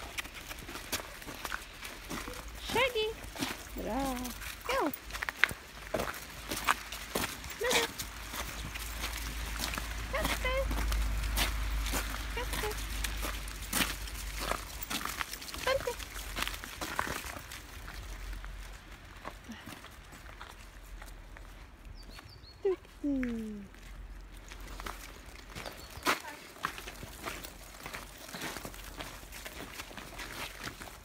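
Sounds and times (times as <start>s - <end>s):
dogs scuffling and clicking: 10.7s - 18.8s.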